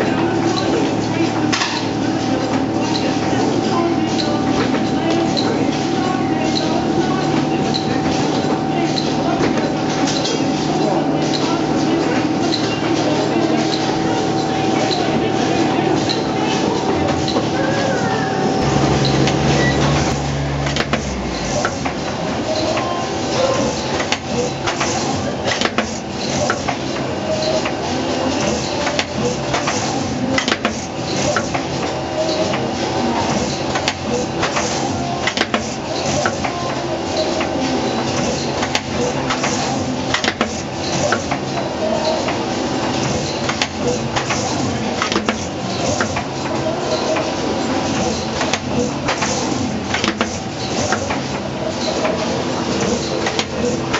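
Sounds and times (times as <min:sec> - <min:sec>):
conveyor and motor hum: 0:00.0 - 0:53.9
steady machine noise: 0:00.0 - 0:53.9
short high blips: 0:18.6 - 0:21.4.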